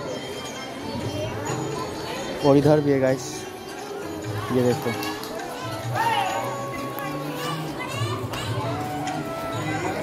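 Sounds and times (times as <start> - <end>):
children's voices: 0.0 - 2.8, 3.5 - 10.0
crowd chatter: 0.0 - 10.0.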